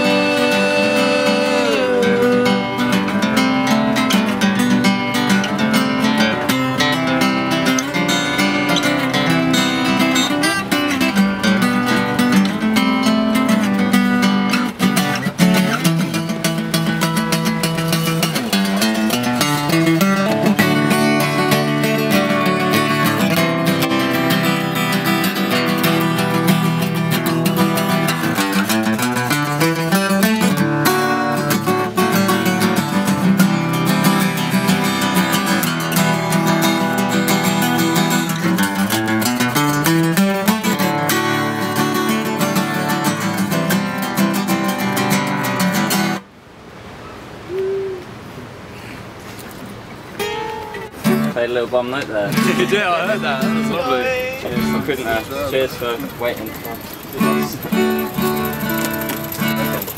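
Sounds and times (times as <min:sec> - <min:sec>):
strummed acoustic guitar band music: 0:00.0 - 0:46.3, 0:49.7 - 0:59.9.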